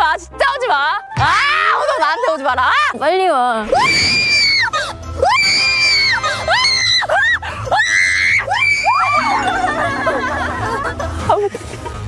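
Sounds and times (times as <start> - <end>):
background music: 0.0 - 12.0
young women screaming: 3.7 - 9.9.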